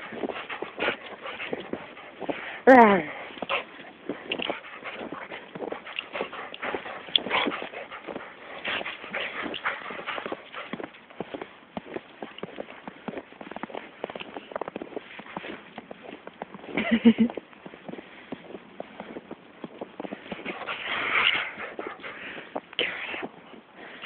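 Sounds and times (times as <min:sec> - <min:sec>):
footsteps crunching through snow: 0:00.0 - 0:24.0.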